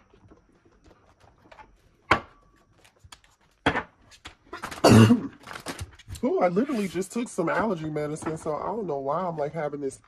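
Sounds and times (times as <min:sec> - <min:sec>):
cards tapping and rustling: 0:05.4 - 0:06.9.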